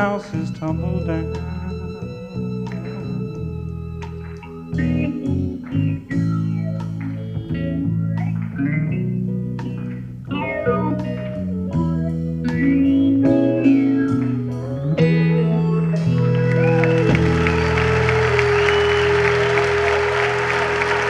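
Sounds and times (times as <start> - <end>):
bass guitar: 0.0 - 21.0
electric guitar: 0.0 - 21.0
drums: 2.3 - 21.0.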